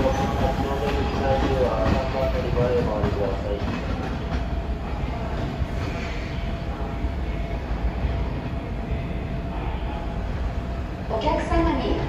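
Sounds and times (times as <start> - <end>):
train rumbling over points: 0.0 - 12.0.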